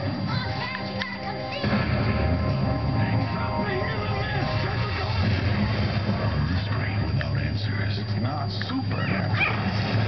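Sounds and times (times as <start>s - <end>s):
steady low hum: 0.0s - 10.0s
puppies whimpering and yipping: 8.9s - 9.7s.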